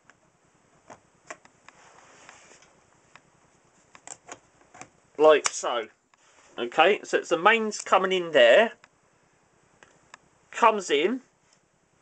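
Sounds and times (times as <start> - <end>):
soft rustle: 1.6 - 4.0, 6.1 - 6.8.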